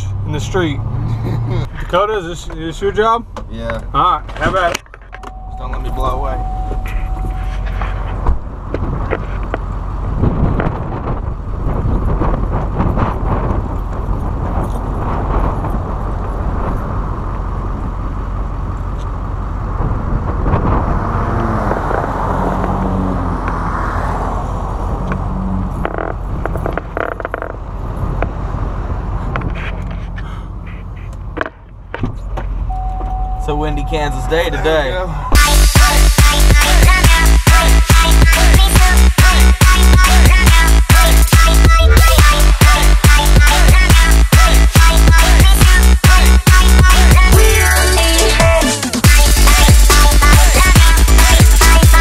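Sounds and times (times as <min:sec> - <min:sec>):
wind buffeting microphone: 0:06.2 - 0:27.0.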